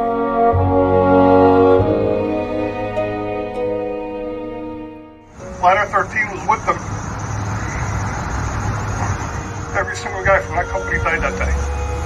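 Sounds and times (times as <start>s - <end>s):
low outdoor rumble: 5.3s - 12.0s.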